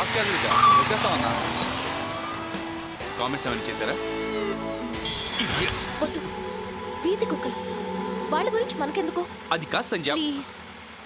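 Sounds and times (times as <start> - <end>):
motorcycle engine running: 0.0 - 5.2
background music: 0.0 - 11.0
heavy rain: 0.0 - 11.0.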